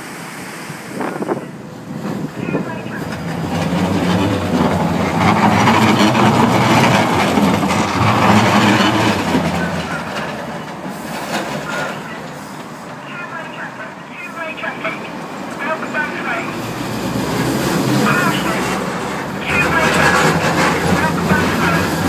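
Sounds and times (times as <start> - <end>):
tram wheels rumbling on rails: 0.0 - 22.0.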